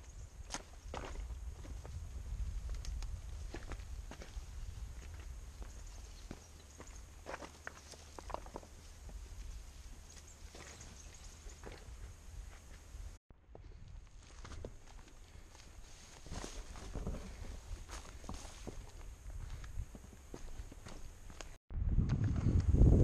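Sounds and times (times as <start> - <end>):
footsteps on loose rocks: 0.5 - 12.8, 13.8 - 21.6.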